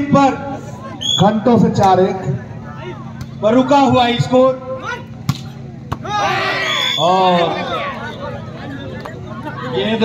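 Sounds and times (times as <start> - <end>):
volleyball smack: 5.2 - 6.1.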